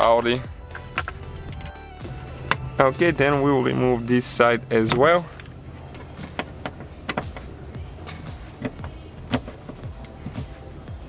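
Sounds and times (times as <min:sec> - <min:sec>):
plastic and metal tapping and snapping: 0:00.7 - 0:01.8, 0:05.9 - 0:10.4.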